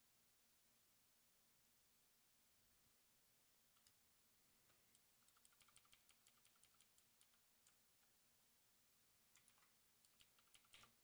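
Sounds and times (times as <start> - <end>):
faint keyboard typing: 3.7 - 4.0, 4.6 - 8.2, 9.3 - 11.0.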